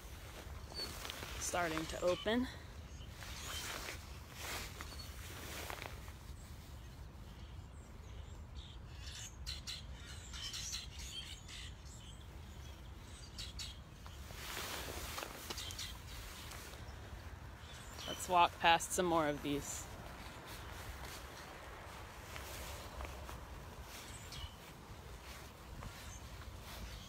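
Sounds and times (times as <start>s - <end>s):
songbirds chirping: 0.0s - 27.0s.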